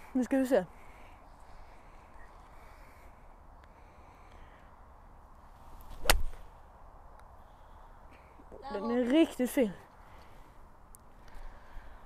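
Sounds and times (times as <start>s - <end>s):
faint outdoor background: 0.0s - 12.0s
golf club swing whoosh: 5.7s - 6.5s
golf club striking ball: 5.9s - 6.4s.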